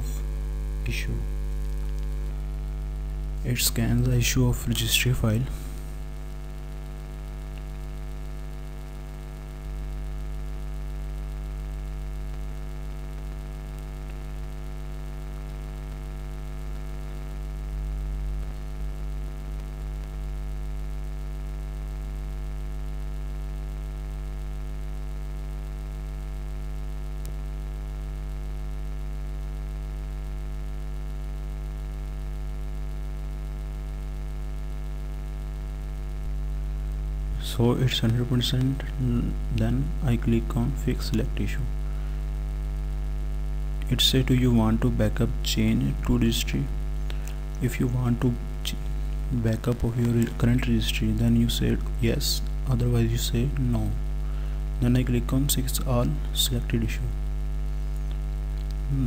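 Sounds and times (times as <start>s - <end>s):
electrical mains hum: 0.0s - 59.0s.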